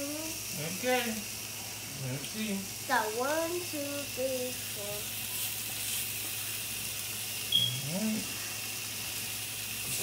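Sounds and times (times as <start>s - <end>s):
hot dogs sizzling on a griddle: 0.0s - 10.0s
short high-pitched squeak: 7.5s - 7.8s.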